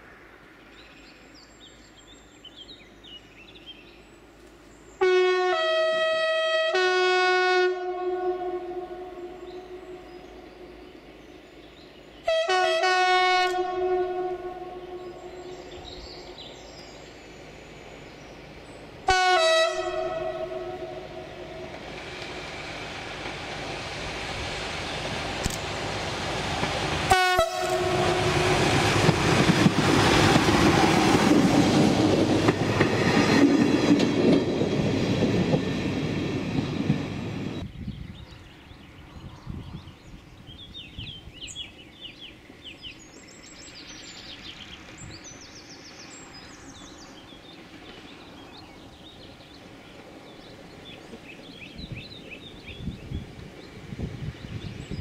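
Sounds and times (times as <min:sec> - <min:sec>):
railcar engine: 0:00.0 - 0:55.0
train chord horn blasts: 0:05.0 - 0:10.2, 0:12.2 - 0:16.0, 0:19.0 - 0:21.8, 0:27.1 - 0:29.0
train wheels on rails: 0:14.6 - 0:55.0.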